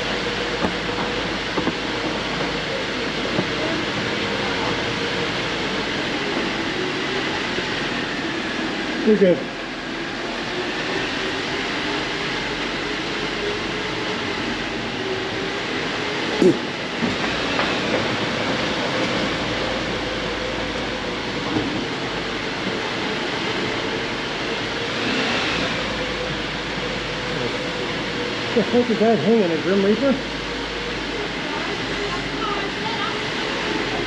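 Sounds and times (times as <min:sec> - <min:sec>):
engine and tyre rumble: 0:00.0 - 0:34.0.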